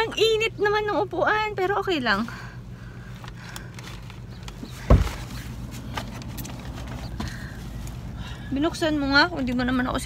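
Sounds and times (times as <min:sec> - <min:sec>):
low hum inside a car: 0:00.0 - 0:10.0
dull thump: 0:04.8 - 0:05.4.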